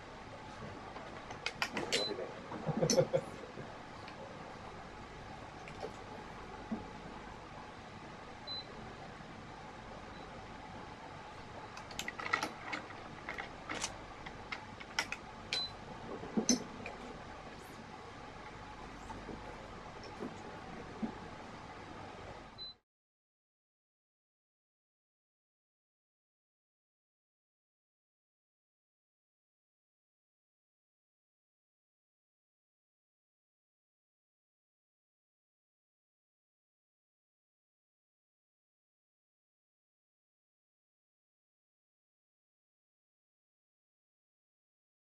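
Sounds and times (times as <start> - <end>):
background room noise: 0.0 - 22.8.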